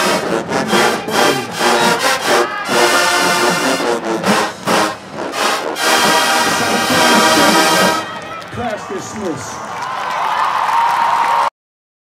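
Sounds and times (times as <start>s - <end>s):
marching band brass playing: 0.0s - 8.8s.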